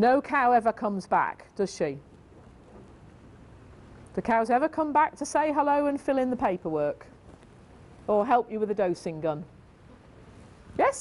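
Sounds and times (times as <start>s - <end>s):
faint hiss: 1.4s - 11.0s.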